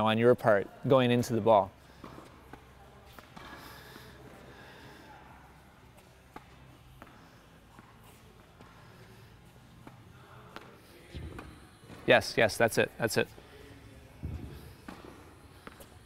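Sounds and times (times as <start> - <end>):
tennis ball on racket: 14.2 - 15.9.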